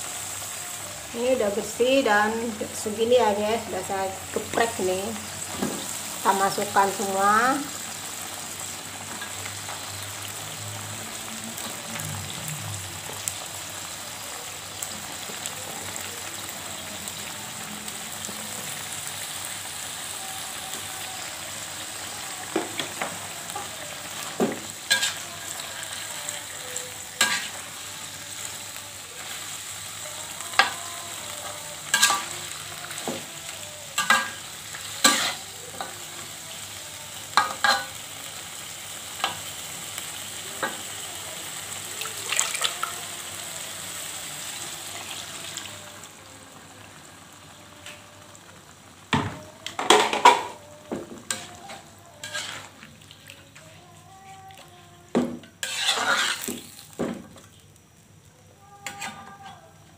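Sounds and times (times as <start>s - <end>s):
food sizzling in a wok: 0.0s - 59.9s
metal spatula scraping wok: 24.7s - 27.9s, 31.4s - 32.5s, 34.0s - 35.9s, 51.3s - 52.8s, 55.6s - 56.7s.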